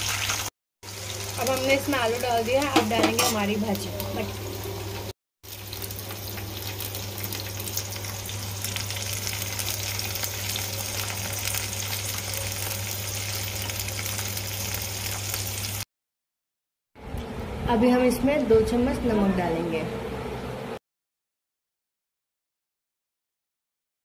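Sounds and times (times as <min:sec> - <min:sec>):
oil sizzling in a frying pan: 0:00.0 - 0:15.9.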